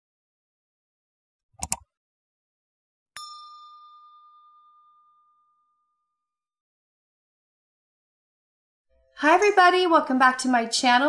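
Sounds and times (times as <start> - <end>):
bell ding: 3.2 - 6.2.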